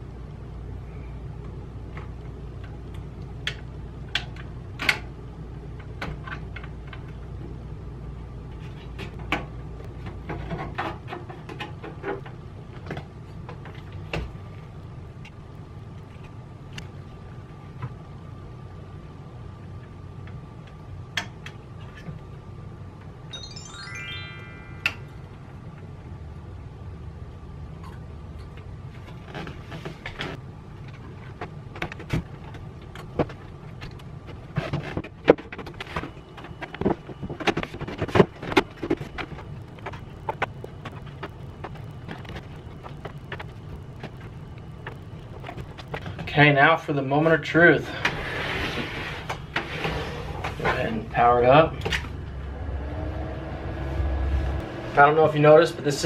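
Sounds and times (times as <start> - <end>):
steady low hum: 0.0 - 56.0
short rising whine: 23.3 - 25.7, 52.0 - 56.0.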